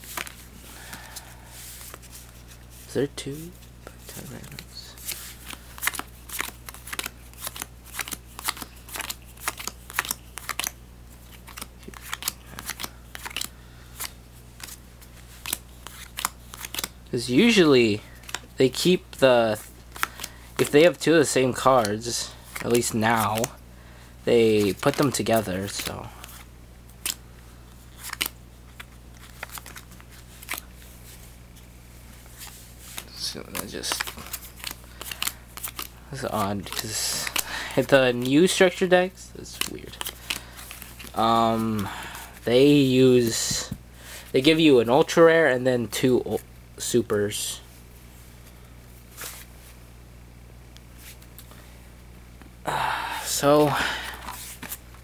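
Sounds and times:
trading cards being handled: 0.0 - 23.5, 24.3 - 44.6, 48.4 - 49.8, 53.4 - 55.0
steady low hum: 0.0 - 55.0
cards flicking and snapping: 4.4 - 14.8, 15.4 - 16.9, 27.0 - 27.2, 27.9 - 30.7, 32.9 - 35.9.

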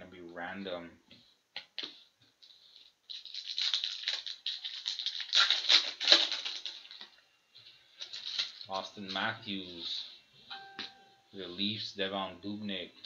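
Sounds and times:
foil wrapper crinkling: 2.4 - 7.2, 7.9 - 10.0.

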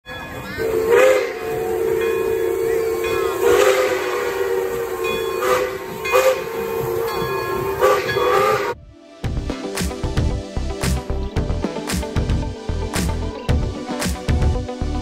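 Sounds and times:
steam locomotive chime whistle: 0.1 - 8.8
hissing steam: 0.6 - 8.8.

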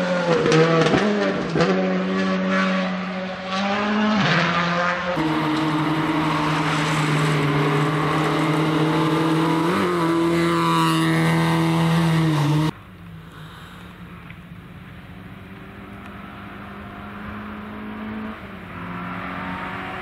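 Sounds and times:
rally car engine at high revs: 0.0 - 12.8, 15.7 - 20.0.

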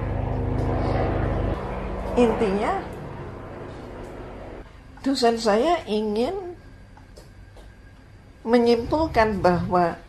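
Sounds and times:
low droning hum: 0.0 - 10.0.

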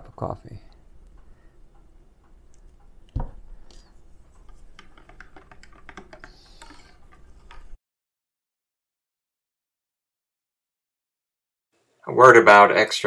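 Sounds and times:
stirrer clicking in ceramic mug: 3.7 - 7.8.

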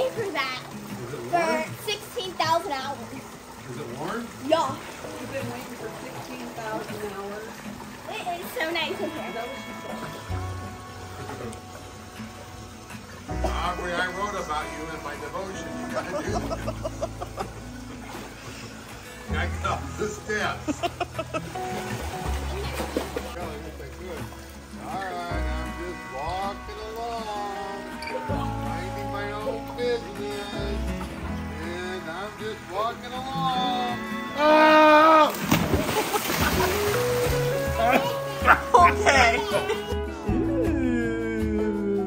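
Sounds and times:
water sloshing: 0.0 - 34.1, 35.0 - 40.2
voices calling out: 0.0 - 42.0
background music with bass line: 10.0 - 42.0
staccato laughter: 20.7 - 21.6
splash into pool: 21.3 - 24.1, 35.2 - 38.3.

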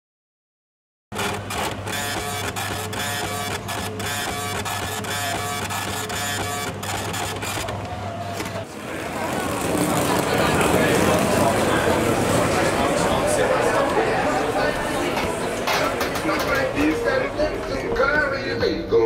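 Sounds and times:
ticket printer chattering: 1.1 - 18.4
chatter of voices: 4.7 - 19.0.

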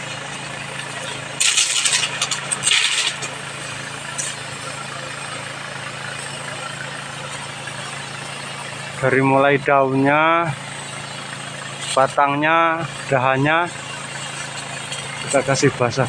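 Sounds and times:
small engine running: 0.0 - 16.0.

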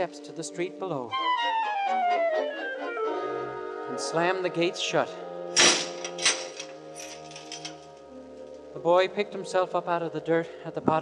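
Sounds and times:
heavy gates slamming shut: 5.6 - 7.8.

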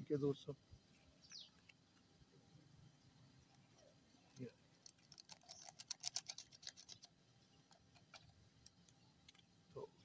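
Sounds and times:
sachet crinkling ticks: 4.3 - 9.5.

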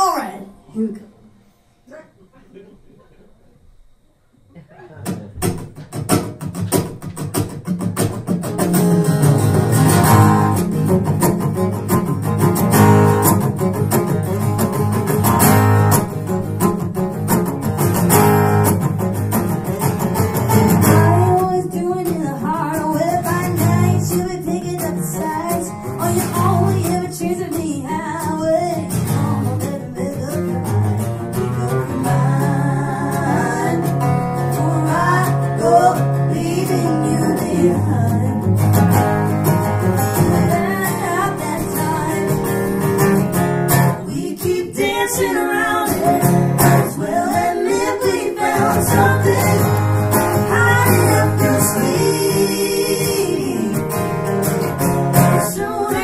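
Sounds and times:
acoustic guitars strumming: 4.7 - 56.0
people singing: 20.8 - 30.6, 31.3 - 38.5, 40.0 - 43.0, 43.8 - 54.2, 55.1 - 56.0.

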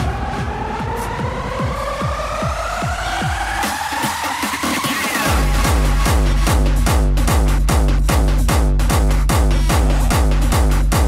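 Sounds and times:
kick drum beat: 0.0 - 4.5, 5.3 - 11.0
synth riser climbing in pitch: 0.0 - 6.5
low bass: 5.3 - 11.0.

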